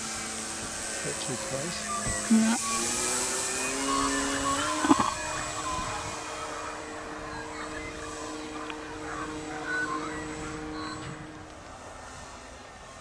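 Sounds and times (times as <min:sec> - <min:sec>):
model plane engine drone: 0:00.0 - 0:13.0.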